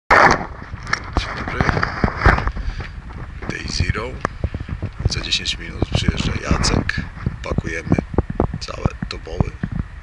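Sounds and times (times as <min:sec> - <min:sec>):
rub on microphone: 0:00.6 - 0:09.7
man's voice: 0:01.2 - 0:01.9, 0:03.4 - 0:04.3, 0:05.0 - 0:08.0, 0:08.6 - 0:09.6.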